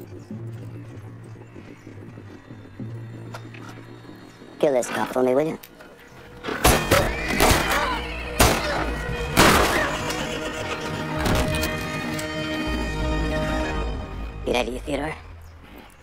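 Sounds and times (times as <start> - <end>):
dramatic film score: 0.0 - 16.0.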